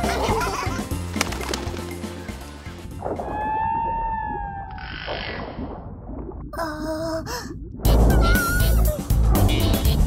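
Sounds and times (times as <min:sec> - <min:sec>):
background music: 0:00.0 - 0:03.6, 0:07.9 - 0:10.0.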